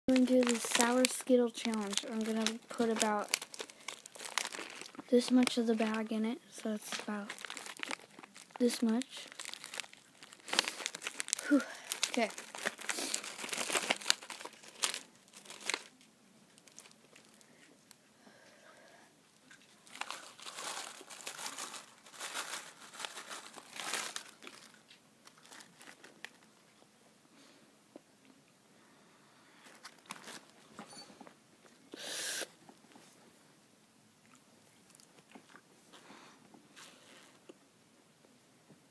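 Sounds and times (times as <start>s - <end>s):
plastic candy bag crinkling: 0.1s - 17.9s, 19.4s - 26.8s, 29.6s - 30.6s.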